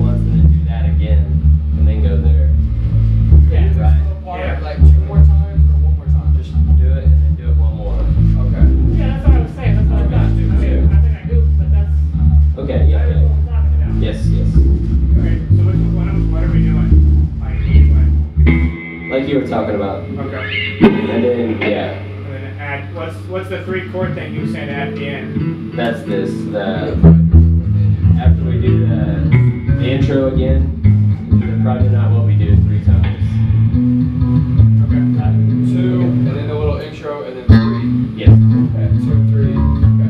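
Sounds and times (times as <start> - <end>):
electric guitar chords: 0.0 - 23.0, 23.6 - 40.0
electric bass guitar low notes: 0.0 - 40.0.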